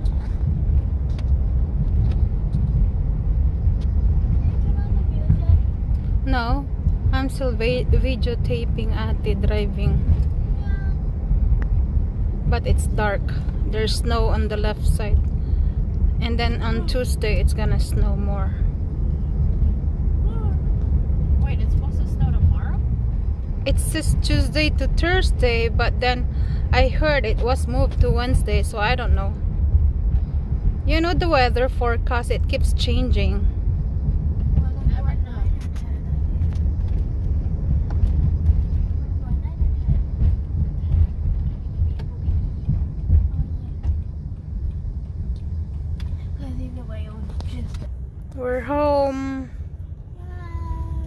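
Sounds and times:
car engine and tyre rumble: 0:00.0 - 0:51.0.

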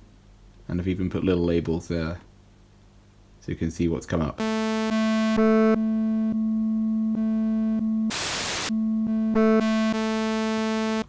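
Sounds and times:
synthesizer note changing tone: 0:04.4 - 0:11.0
synthesizer noise hiss: 0:08.0 - 0:11.0.

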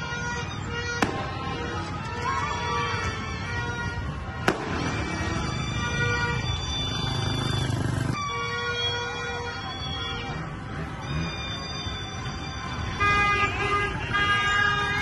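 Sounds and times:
street noise: 0:00.0 - 0:15.0
firecracker bang: 0:01.0 - 0:01.5, 0:04.4 - 0:05.1.

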